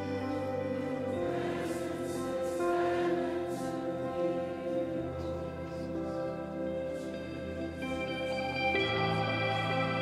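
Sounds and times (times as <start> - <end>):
held keyboard chords: 0.0 - 10.0
people singing: 0.0 - 10.0.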